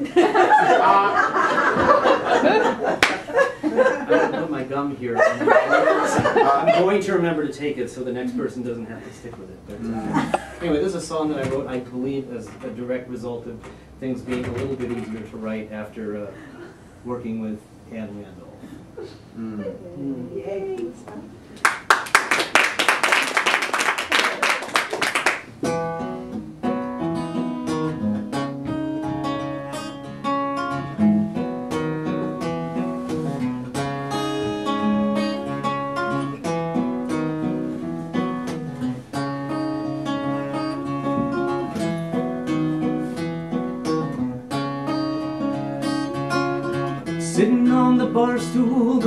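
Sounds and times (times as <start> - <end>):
acoustic guitar picking: 0.7 - 16.2, 25.5 - 49.0
applause: 3.0 - 3.2, 21.6 - 25.5.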